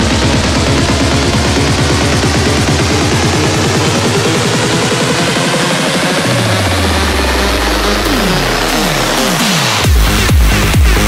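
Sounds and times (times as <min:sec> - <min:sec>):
descending synth pitch sweeps: 0:00.0 - 0:11.0
low bass drone: 0:00.0 - 0:11.0.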